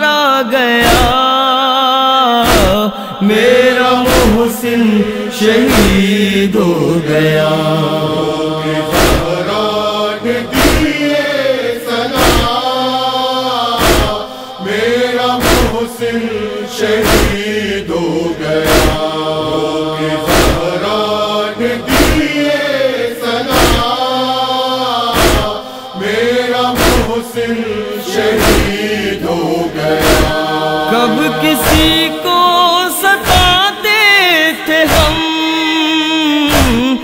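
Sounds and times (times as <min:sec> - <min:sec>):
voices chanting a mourning lament: 0:00.0 - 0:37.0
chest-beating thumps: 0:08.9 - 0:09.4, 0:10.5 - 0:11.0, 0:12.1 - 0:12.6, 0:13.8 - 0:14.3, 0:15.4 - 0:15.9, 0:16.9 - 0:17.5, 0:18.6 - 0:19.1, 0:20.3 - 0:20.8, 0:21.8 - 0:22.4, 0:23.5 - 0:23.9, 0:25.1 - 0:25.6, 0:26.7 - 0:27.2, 0:28.2 - 0:28.9, 0:29.9 - 0:30.5, 0:31.6 - 0:32.1, 0:36.5 - 0:36.9.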